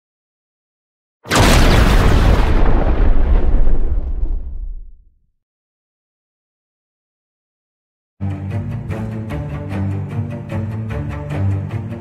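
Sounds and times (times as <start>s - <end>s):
boom sound effect: 1.3s - 5.1s.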